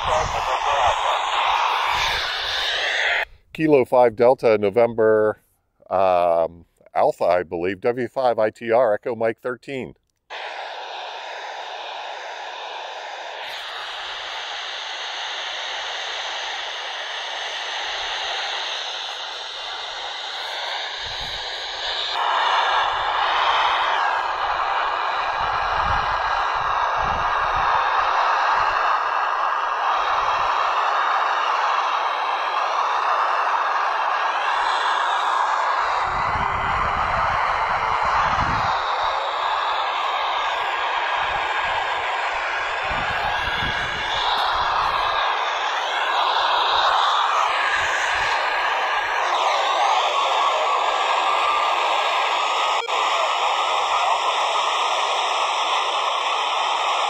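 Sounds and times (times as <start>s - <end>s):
radio receiver hiss: 0.0s - 5.1s, 9.7s - 57.0s
faint wavering radio signals: 0.0s - 5.2s, 5.9s - 57.0s.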